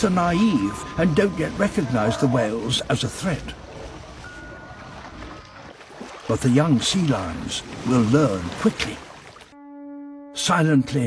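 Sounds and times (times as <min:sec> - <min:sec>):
surf washing: 0:00.0 - 0:09.6.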